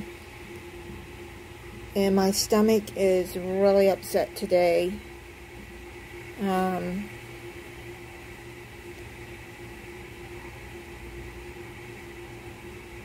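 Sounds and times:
mechanical hum with high whine: 0.0s - 13.0s.

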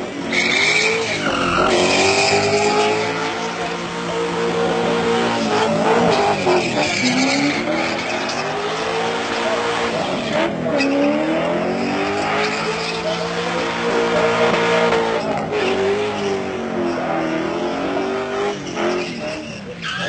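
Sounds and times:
car engine revving: 0.0s - 20.0s
tyres screeching: 0.3s - 13.4s, 18.6s - 20.0s.

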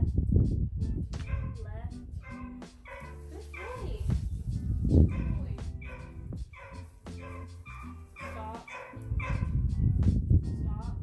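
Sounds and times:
background music: 0.0s - 11.0s
puppy barking: 1.2s - 1.6s, 2.2s - 4.0s, 5.1s - 9.6s.

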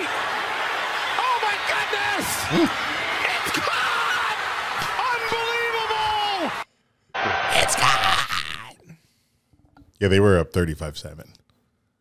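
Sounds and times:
crowd cheering: 0.0s - 8.6s
announcer yelling: 0.9s - 6.6s, 7.5s - 8.4s.

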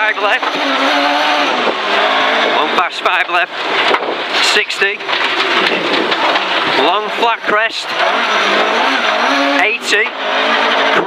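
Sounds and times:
rally car engine at speed: 0.0s - 11.0s.

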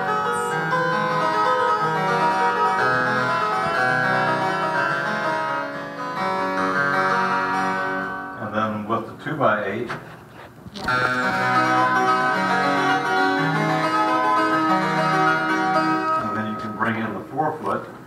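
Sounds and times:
harpsichord playing: 0.0s - 8.9s, 10.9s - 17.5s.

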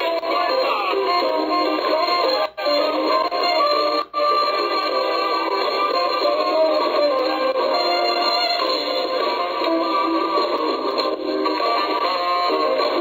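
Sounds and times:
guitar: 0.0s - 13.0s
saxophone lead line: 0.0s - 13.0s.

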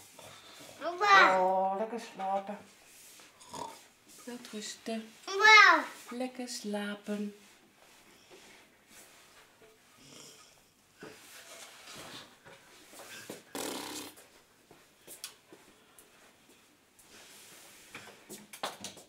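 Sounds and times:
person fake snoring: 3.4s - 3.8s, 13.5s - 14.2s.

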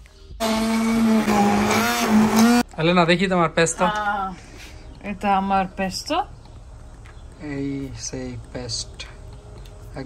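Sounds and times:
stick blender running: 0.4s - 2.6s.

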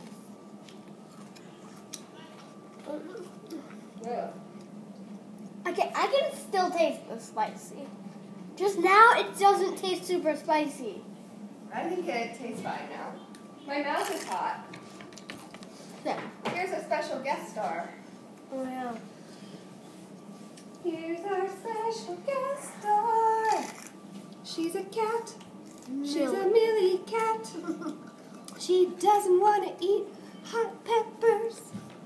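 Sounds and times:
child chewing: 0.6s - 4.0s, 27.9s - 28.6s.

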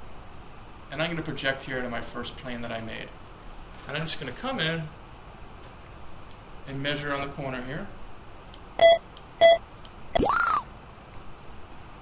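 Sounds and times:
rising and falling tone: 10.2s - 10.7s.

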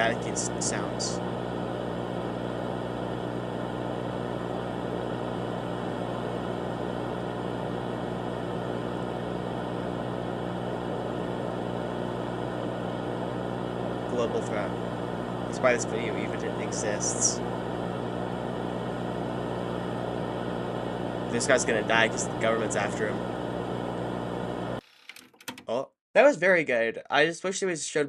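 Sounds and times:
person speaking: 0.0s - 1.2s, 13.9s - 17.7s, 21.0s - 23.4s
static tape hiss: 0.0s - 24.8s.

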